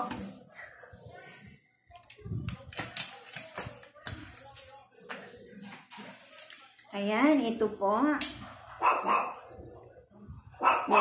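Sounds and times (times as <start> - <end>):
dog barking: 8.4 - 9.5, 10.6 - 11.0.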